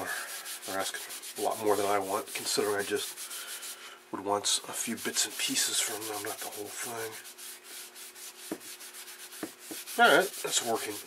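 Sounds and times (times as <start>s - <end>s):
cloth rag rubbing cable: 0.0s - 3.8s, 4.6s - 11.0s.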